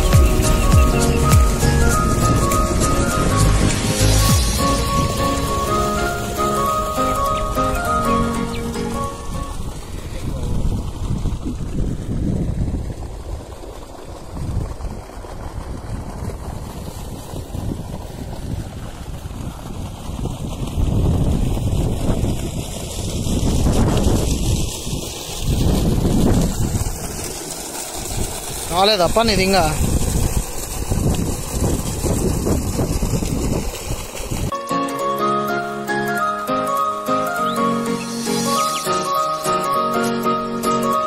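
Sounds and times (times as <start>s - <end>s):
background music: 0.0s - 9.7s, 34.5s - 41.0s
wind buffeting microphone: 8.6s - 34.5s.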